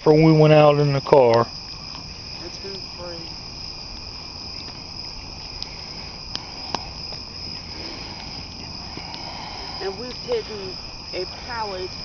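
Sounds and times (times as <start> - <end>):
campfire burning: 0.0 - 12.0
crickets chirping: 0.0 - 12.0
campfire pops: 0.8 - 11.2.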